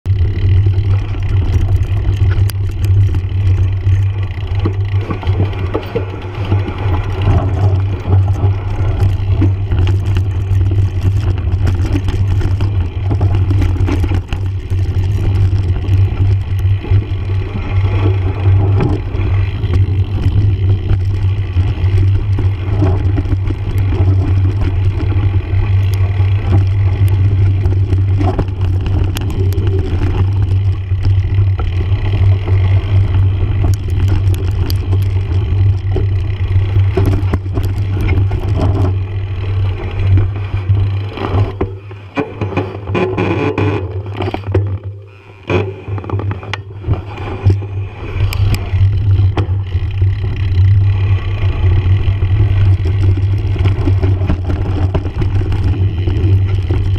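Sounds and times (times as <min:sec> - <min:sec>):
knobby tyres on gravel: 0:00.0 - 0:56.9
wind rumble on microphone: 0:00.0 - 0:56.9
bike rattling and knocking: 0:00.1 - 0:56.9.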